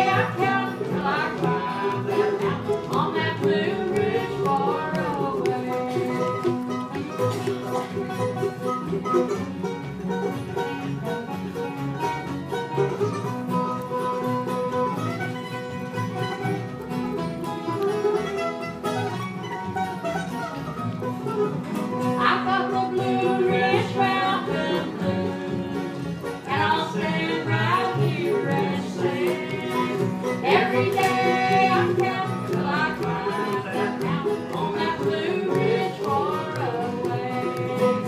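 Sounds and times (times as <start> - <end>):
bluegrass band playing: 0.0 - 38.0.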